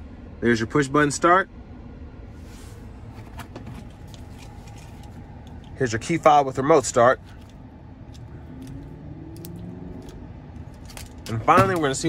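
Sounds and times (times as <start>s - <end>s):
vehicle cabin hum: 0.0s - 12.0s.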